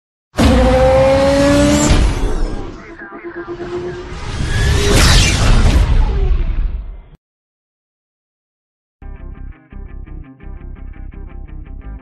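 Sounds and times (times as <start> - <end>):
racing engine rising in pitch: 0.4 - 5.3
loud rushing noise: 0.5 - 6.8.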